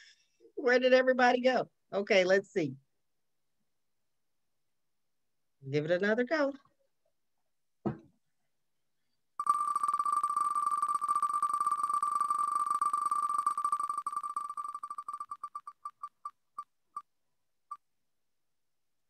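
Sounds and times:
spinning wheel electronic ticks: 9.4s - 16.6s.

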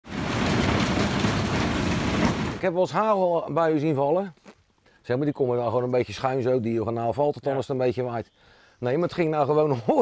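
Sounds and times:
heavy rain and hail: 0.0s - 2.8s.

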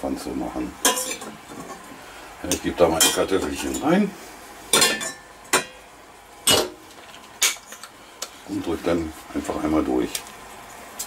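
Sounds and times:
metal kitchenware clanking: 0.8s - 1.8s, 2.5s - 3.8s, 4.7s - 5.8s, 6.5s - 6.8s.

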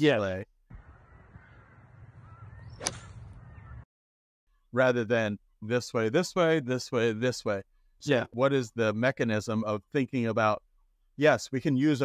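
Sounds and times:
low outdoor rumble: 0.7s - 3.8s
faint bird calls: 0.8s - 3.8s
golf club striking ball: 2.8s - 3.2s.

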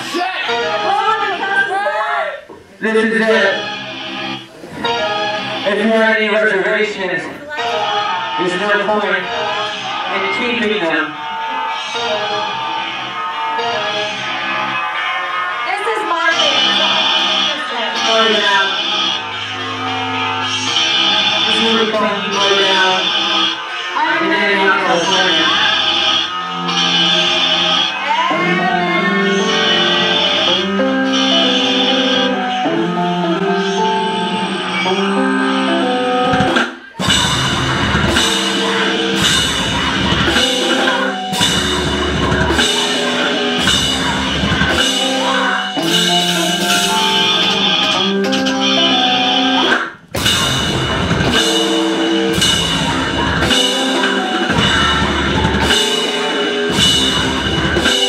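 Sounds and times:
loud live noisecore band: 7.4s - 58.0s
drum kit: 24.5s - 58.0s.

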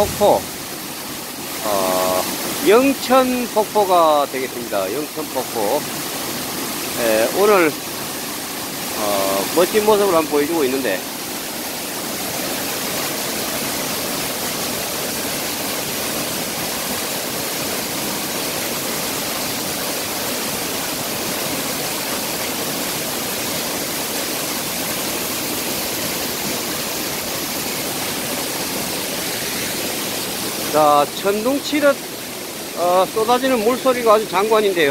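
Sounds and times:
waterfall rushing: 0.0s - 34.9s.

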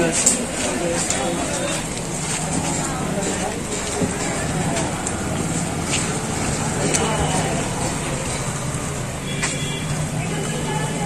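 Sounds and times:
people's voices: 0.0s - 11.0s
traffic engine hum: 0.0s - 11.0s.

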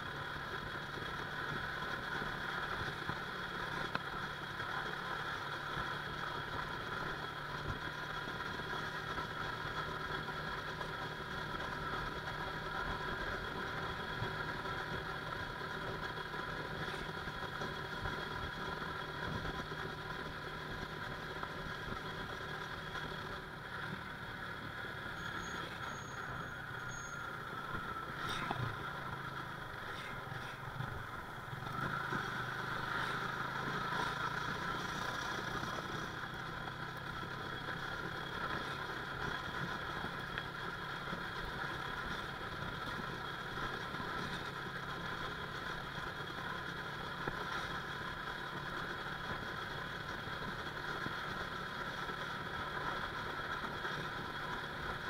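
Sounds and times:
motorcycle engine cruising: 0.0s - 55.0s
road and wind noise: 0.0s - 55.0s.

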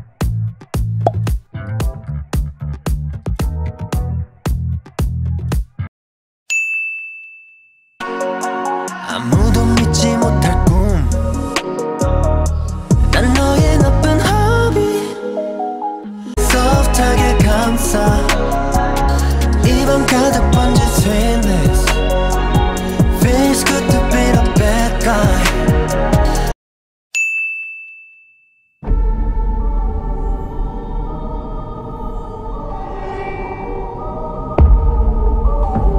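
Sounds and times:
music: 0.0s - 5.9s, 8.0s - 26.6s, 28.8s - 35.9s
high bell-like ding: 6.5s - 8.0s, 27.2s - 28.8s
dark organ-like music: 15.7s - 26.5s.

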